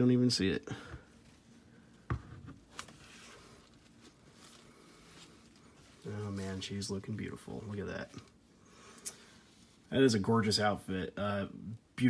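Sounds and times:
fabric rustling: 1.0s - 9.9s.

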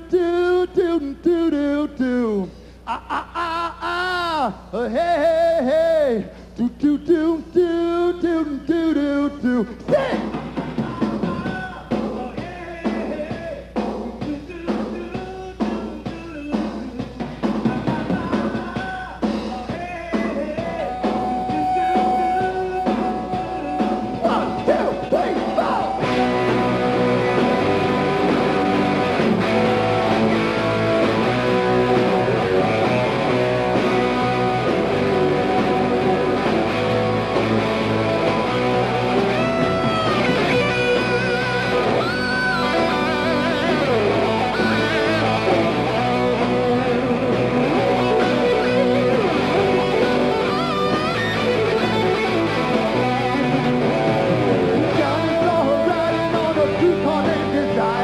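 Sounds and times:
drums: 0.0s - 58.0s
electric guitar lead: 20.9s - 58.0s.

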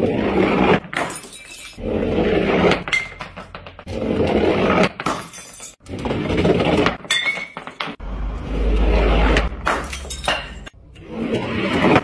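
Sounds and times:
metal ball rolling on wood: 0.0s - 12.0s
glass bottles clinking: 5.1s - 5.8s, 7.1s - 7.9s, 9.7s - 10.7s.

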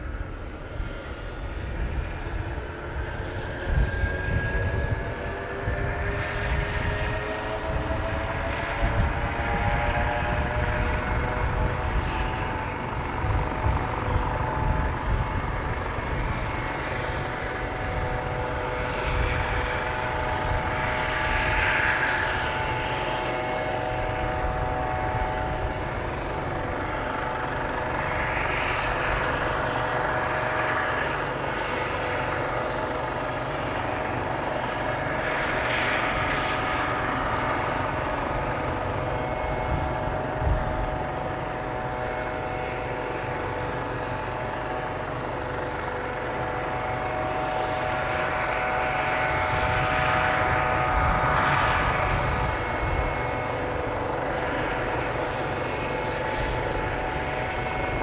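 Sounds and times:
helicopter turbine engines running: 0.0s - 58.0s.

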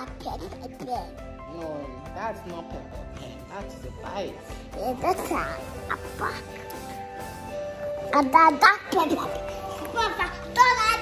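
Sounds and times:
background music: 0.0s - 11.0s
child making vocal sounds: 4.7s - 6.8s.

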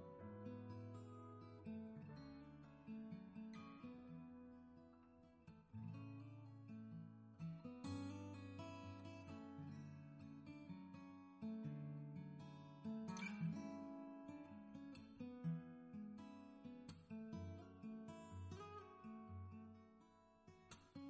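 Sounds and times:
acoustic guitar picked and strummed: 0.0s - 21.0s.

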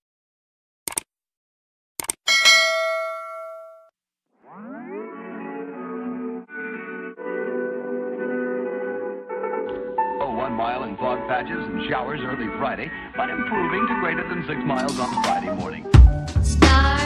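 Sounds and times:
quick clicks: 0.9s - 1.1s, 2.0s - 2.2s
bright bell-like ding: 2.3s - 3.9s
upbeat background music: 4.6s - 17.0s.

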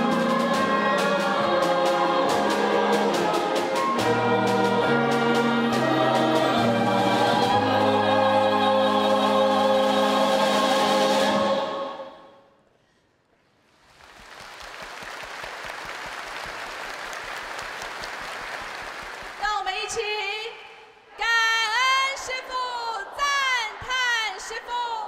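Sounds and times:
orchestra and choir performing: 0.0s - 12.3s
audience applauding: 13.8s - 19.5s.

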